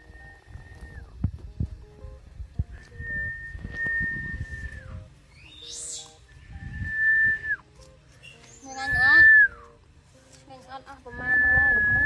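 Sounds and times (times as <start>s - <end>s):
person whistling falling notes: 0.0s - 1.2s, 2.8s - 7.7s, 8.6s - 9.7s, 11.1s - 12.0s
faint background music: 0.0s - 12.0s.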